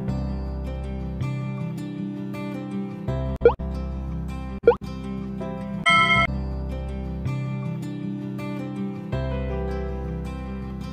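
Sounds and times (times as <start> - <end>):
soft background music: 0.0 - 10.9
pop sound effects: 3.4 - 3.6.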